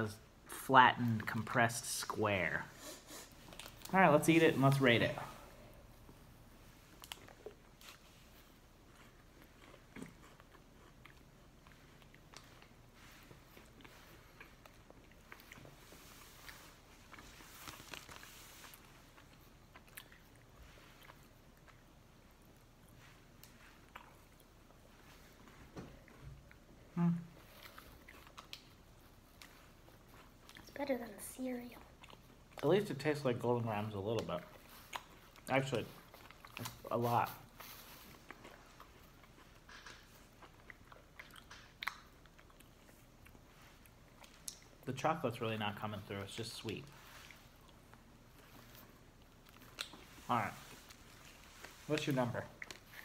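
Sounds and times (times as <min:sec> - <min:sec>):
people chewing crunchy food: 0:00.0 - 0:53.0
person humming: 0:26.9 - 0:27.3.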